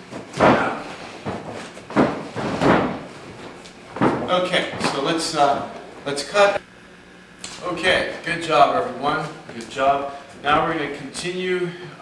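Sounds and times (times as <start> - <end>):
feet thudding on gym mats: 0.0 - 6.0.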